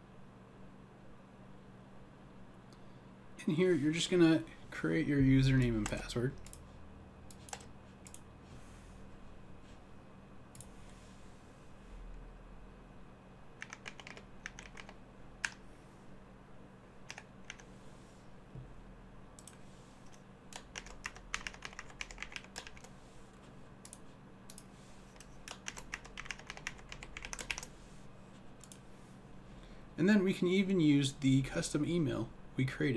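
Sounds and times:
typing on computer keyboard: 7.3s - 8.2s, 13.6s - 15.6s, 17.0s - 17.7s, 19.4s - 22.9s, 25.2s - 27.7s.

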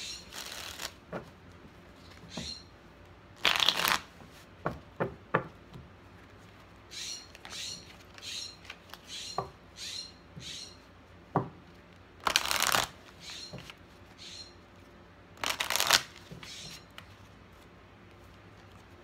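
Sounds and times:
cards shuffled by hand: 0.0s - 2.4s, 3.4s - 4.5s, 11.7s - 14.2s, 15.3s - 19.0s.

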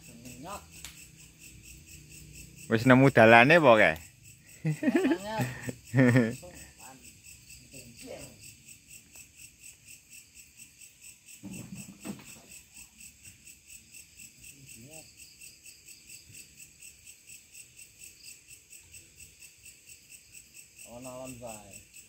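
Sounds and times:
crickets chirping: 0.0s - 22.0s.

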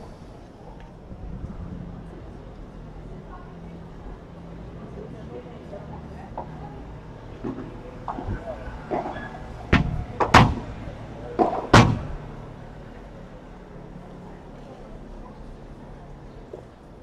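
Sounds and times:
padel ball hits: 9.7s - 12.2s.

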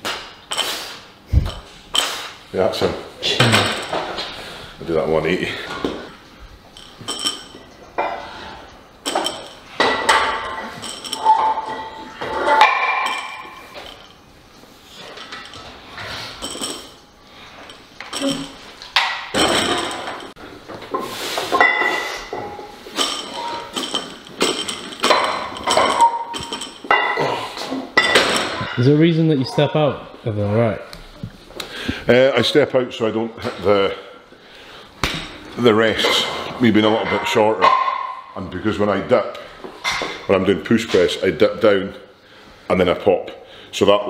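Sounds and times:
metal weight plates knocking and clinking: 6.8s - 14.2s, 17.6s - 20.4s, 21.6s - 27.4s, 28.0s - 29.6s, 36.8s - 38.3s.

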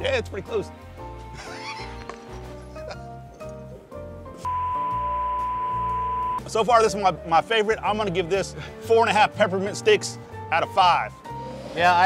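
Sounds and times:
background music: 0.0s - 12.0s
high-pitched test-tone beep: 4.5s - 6.4s.

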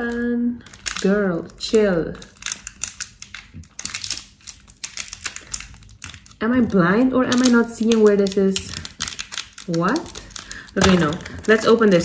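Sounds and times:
fingernails clicking on plastic: 0.0s - 12.0s
plastic packaging crinkling: 0.0s - 12.0s.

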